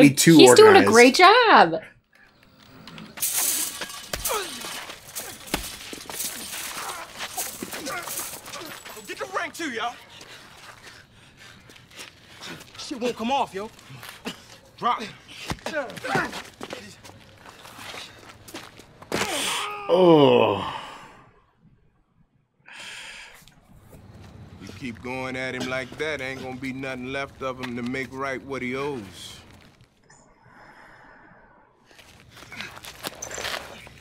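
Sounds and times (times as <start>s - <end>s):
chain-link fence rattling: 2.9s - 10.1s
footsteps on pavement: 4.9s - 19.2s, 23.8s - 30.0s
person crying out: 19.2s - 20.8s.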